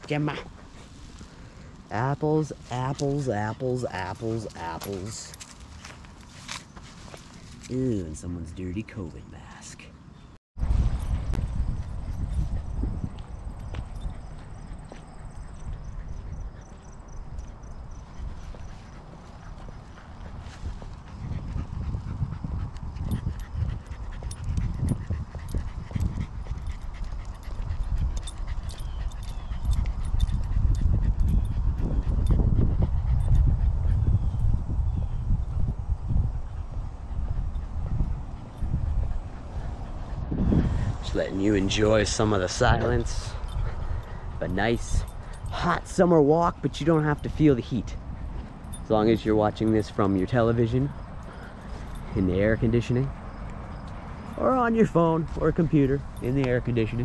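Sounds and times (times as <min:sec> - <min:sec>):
wind rumble on microphone: 0:10.6 - 0:57.0
dog panting: 0:11.1 - 0:57.0.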